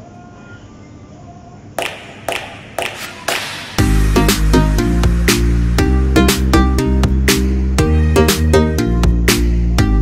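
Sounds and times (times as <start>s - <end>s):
hand-clap beats: 1.8s - 7.6s.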